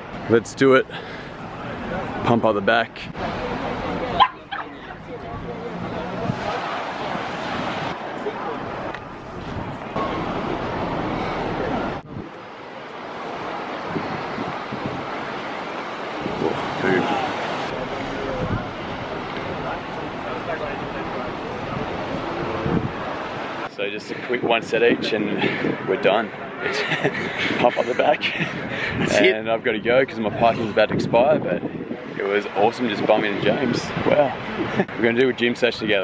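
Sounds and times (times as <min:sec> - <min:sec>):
outdoor noise wash: 0:00.0 - 0:36.0
people talking: 0:00.3 - 0:00.9, 0:01.6 - 0:06.9, 0:16.4 - 0:22.5, 0:23.7 - 0:36.0
dog barking: 0:04.2 - 0:04.8.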